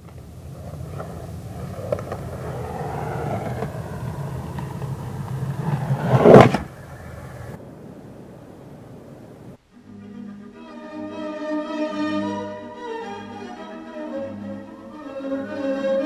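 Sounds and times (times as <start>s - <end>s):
low rumble into loud rushing: 0.2s - 9.6s.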